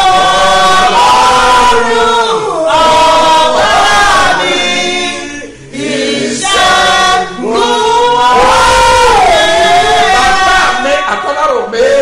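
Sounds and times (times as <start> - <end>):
voices singing worship: 0.0 - 12.0.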